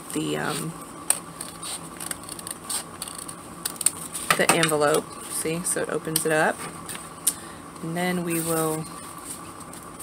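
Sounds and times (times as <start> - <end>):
scissors cutting paper: 1.4 - 4.1.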